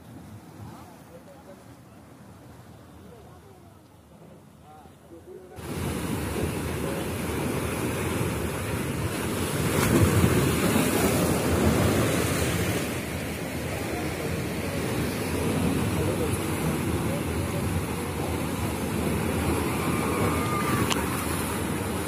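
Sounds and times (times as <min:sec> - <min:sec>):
sea waves breaking over rocks: 0:00.0 - 0:22.0.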